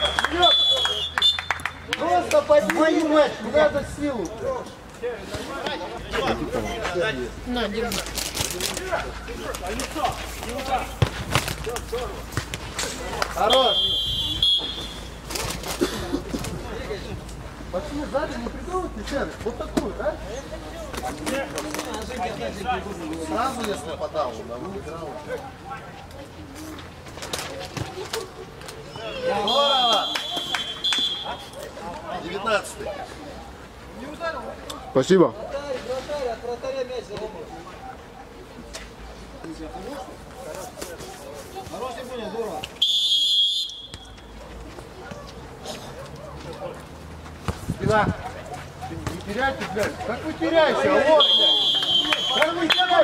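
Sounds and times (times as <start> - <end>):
referee's whistle: 0.0 - 1.8, 13.5 - 15.1, 28.9 - 31.5, 42.8 - 44.3, 51.1 - 53.0
ball thump: 11.0 - 12.7
players shouting: 49.1 - 53.0.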